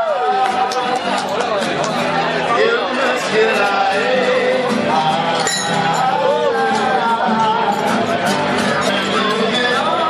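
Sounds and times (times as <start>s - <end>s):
voices chattering: 0.0s - 10.0s
acoustic guitars strumming: 0.4s - 10.0s
person singing: 2.6s - 10.0s.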